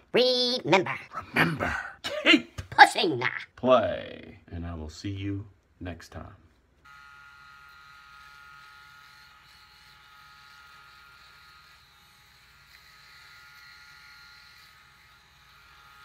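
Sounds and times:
electric shaver whining: 0:06.8 - 0:16.0.

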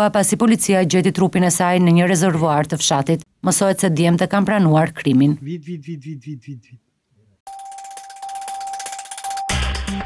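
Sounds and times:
steady ringing tone: 0:07.5 - 0:10.0.

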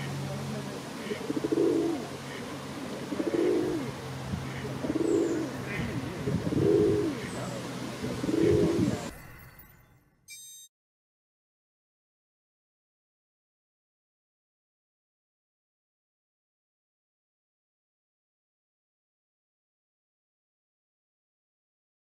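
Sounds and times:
pigeons cooing: 0:00.8 - 0:09.1.

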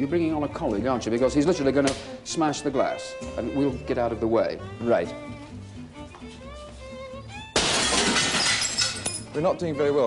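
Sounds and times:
glass smashing: 0:07.6 - 0:09.3.

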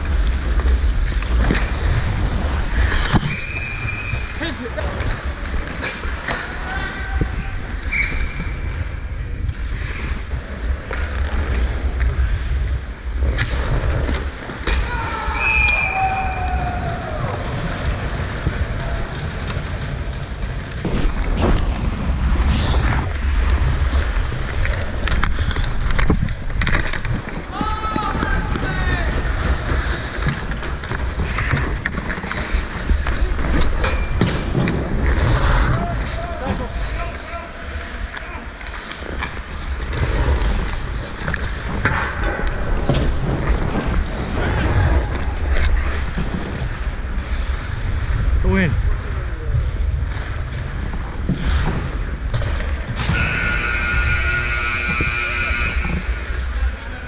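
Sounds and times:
hockey sticks and puck clacking: 0:00.0 - 0:21.8, 0:23.5 - 0:47.6
skate blades scraping ice: 0:00.0 - 0:48.9, 0:49.5 - 0:57.0
players shouting: 0:14.7 - 0:17.7
wind rumbling on microphone: 0:16.1 - 0:36.8, 0:39.7 - 0:53.1.

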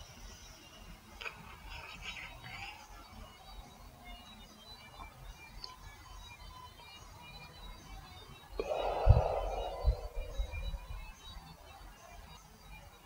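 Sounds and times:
person exhaling hard: 0:08.6 - 0:10.9.

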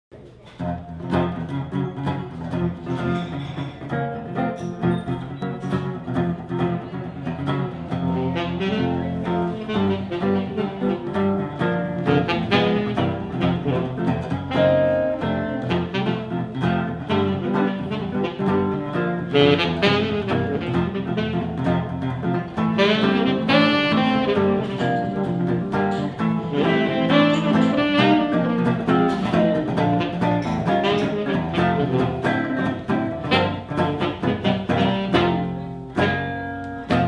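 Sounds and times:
acoustic guitar: 0:00.2 - 0:37.0
saxophone: 0:00.6 - 0:37.0.

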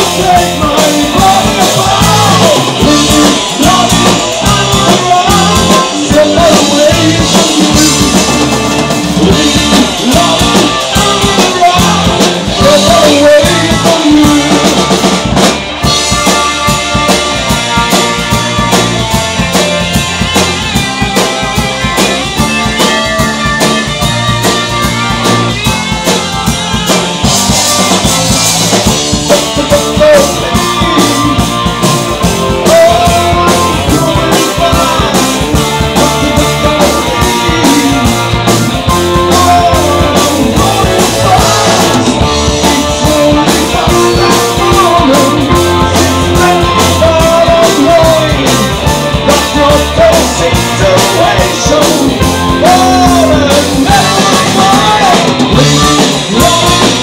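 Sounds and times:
drum kit beat: 0:00.0 - 0:57.0
live rock band playing: 0:00.0 - 0:57.0.

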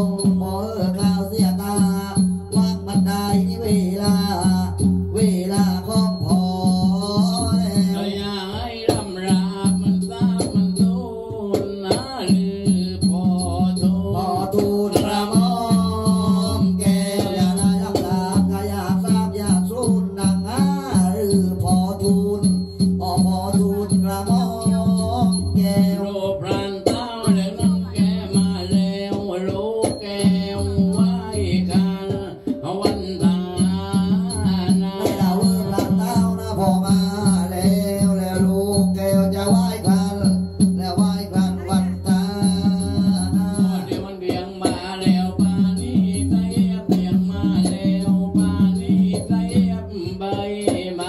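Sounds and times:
drum strokes: 0:00.0 - 0:51.0
person chanting: 0:00.0 - 0:51.0.

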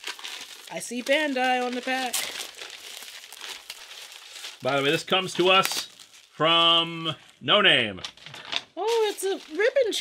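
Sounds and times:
plastic wrapper crinkling: 0:00.0 - 0:06.5, 0:08.0 - 0:10.0.

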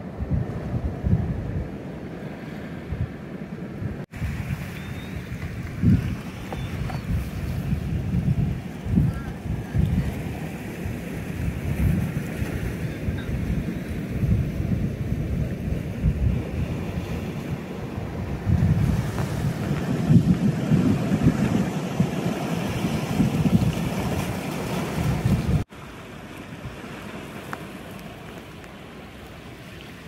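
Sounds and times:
wind buffeting microphone: 0:00.0 - 0:02.1, 0:02.8 - 0:25.7
sea surf on rocky shore: 0:00.0 - 0:30.0.

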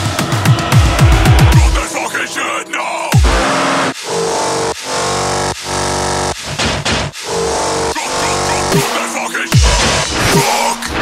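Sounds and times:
distorted synth bass: 0:00.0 - 0:02.4, 0:03.1 - 0:11.0.

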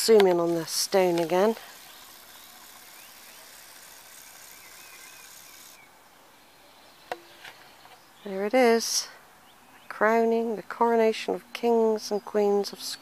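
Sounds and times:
distant bird chirps: 0:00.0 - 0:10.1.

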